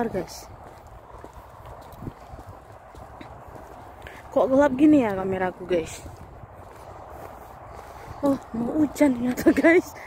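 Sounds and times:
footsteps on tarmac: 0.0s - 10.0s.

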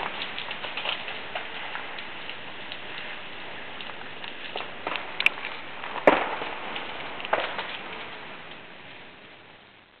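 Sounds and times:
icy tree branches cracking: 0.0s - 9.5s
freezing rain patter: 0.0s - 10.0s
branch crashing: 4.5s - 8.2s.

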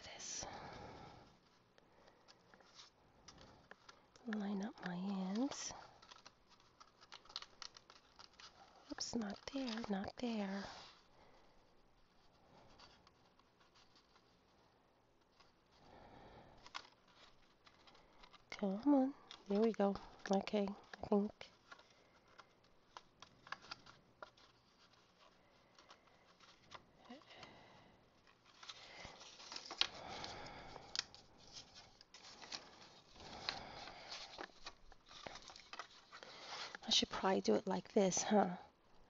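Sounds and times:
cardstock ticks and rustles: 1.3s - 38.2s.

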